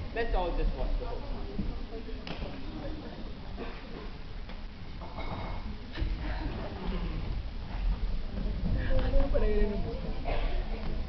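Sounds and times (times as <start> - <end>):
hall room noise: 0.0 - 11.0.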